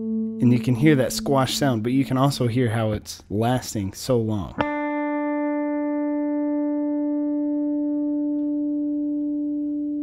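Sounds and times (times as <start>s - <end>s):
sustained electric guitar note: 0.0s - 2.2s.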